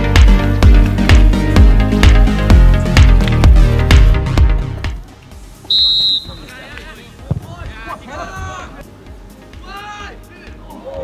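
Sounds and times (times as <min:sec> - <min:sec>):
referee's whistle blast: 0:05.7 - 0:06.6.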